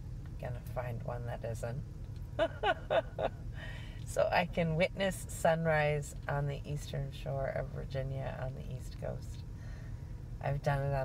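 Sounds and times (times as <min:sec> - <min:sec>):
vehicle hum: 0:00.0 - 0:11.0
woman laughing: 0:02.4 - 0:03.4.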